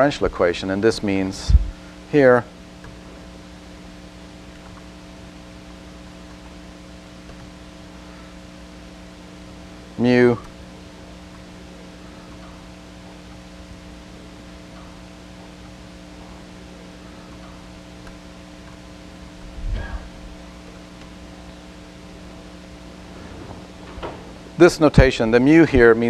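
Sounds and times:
electrical hum: 0.0 - 26.0.

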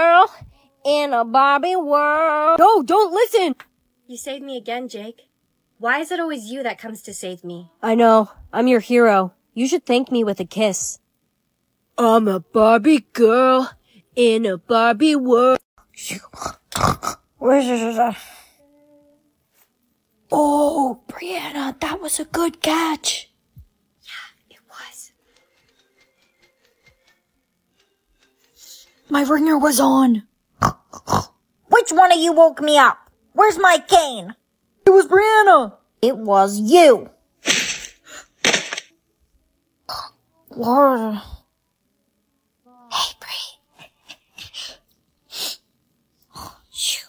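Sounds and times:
person whispering: 24.0 - 25.2.

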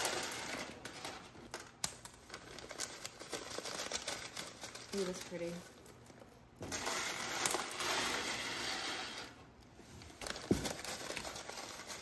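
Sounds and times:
crystals rustling and clinking: 0.0 - 9.4
plastic bag crinkling: 0.0 - 12.0.

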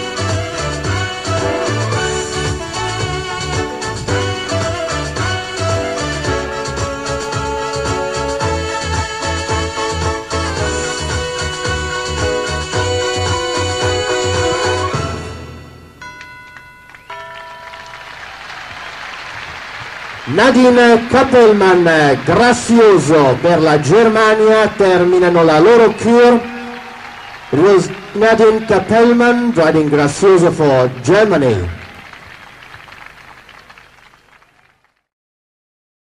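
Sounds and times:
music final chord: 0.0 - 18.4
crowd applause: 16.9 - 35.0.

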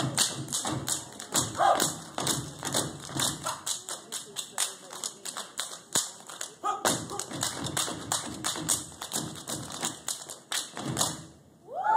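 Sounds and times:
rhythmic stomps: 0.0 - 3.9, 6.8 - 11.4
claps and hand slaps: 0.0 - 11.3.

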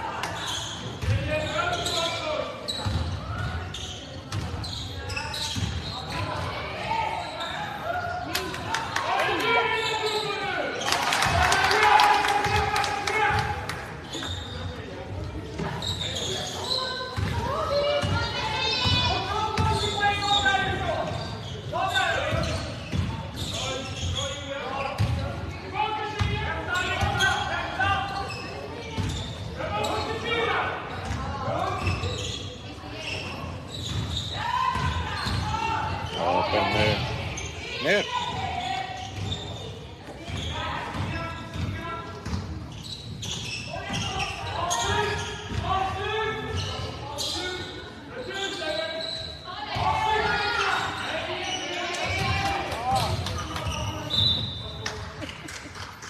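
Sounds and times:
basketball bouncing on wooden court: 17.2 - 19.9, 33.8 - 35.6, 40.3 - 42.5.

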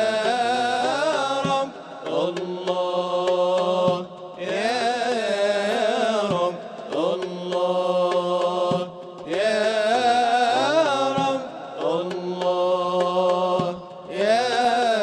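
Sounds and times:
man singing devotional chant: 0.0 - 15.0.

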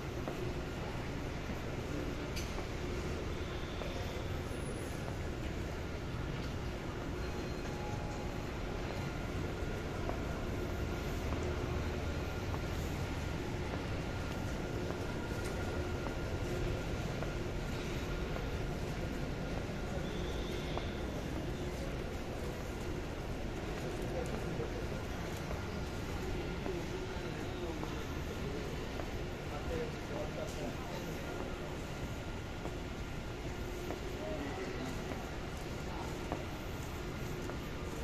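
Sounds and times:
low rumbling mall ambience: 0.0 - 38.0.

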